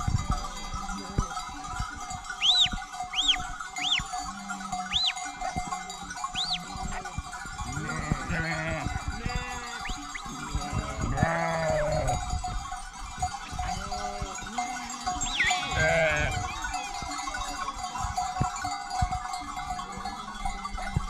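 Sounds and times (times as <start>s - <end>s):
jingling sheep bells: 0.0s - 21.0s
sheep bleating: 2.4s - 12.3s, 13.5s - 16.9s.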